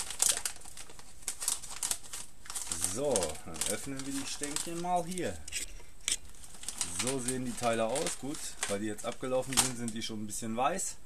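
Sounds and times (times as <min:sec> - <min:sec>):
plastic snack bag crackling: 0:00.0 - 0:10.1.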